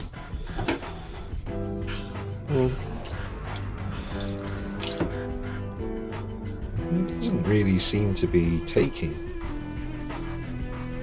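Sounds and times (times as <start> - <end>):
water splashing in a basin: 4.0 - 5.4.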